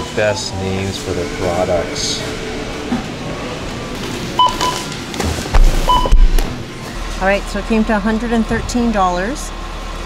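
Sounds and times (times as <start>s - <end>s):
barcode scanner beeping: 4.4s - 4.9s, 5.9s - 6.4s.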